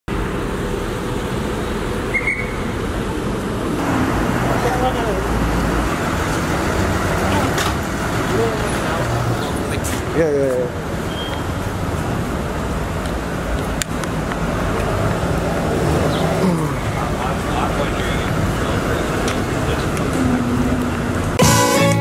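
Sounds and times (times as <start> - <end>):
traffic noise: 0.1 - 22.0
short high squeak: 11.1 - 11.5.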